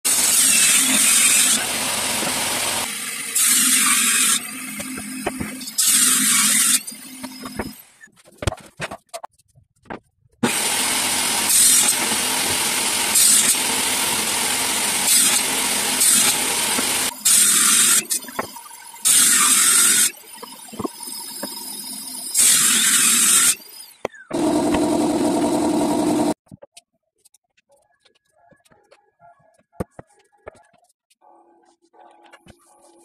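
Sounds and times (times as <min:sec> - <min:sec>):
table saw cutting board: 0:00.1 - 0:07.8, 0:10.4 - 0:26.4.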